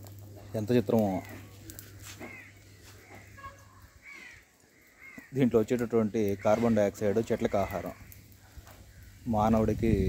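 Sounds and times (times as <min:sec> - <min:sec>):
crow cawing: 0:01.2 - 0:05.6, 0:06.2 - 0:09.2.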